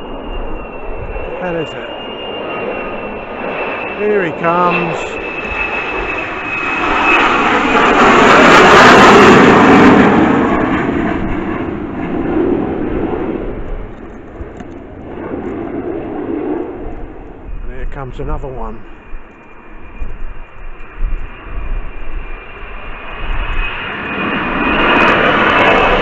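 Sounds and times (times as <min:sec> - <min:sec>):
jet passing low overhead: 0:00.0 - 0:26.0.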